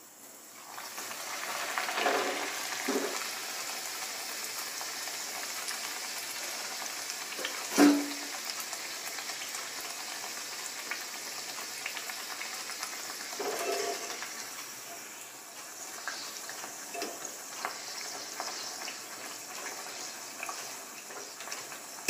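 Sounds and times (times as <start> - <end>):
oil sizzling: 0.0 - 22.0.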